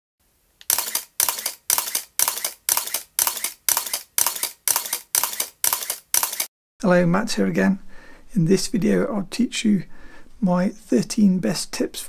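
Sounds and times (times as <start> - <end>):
camera shutter clicking: 0.6 - 6.5.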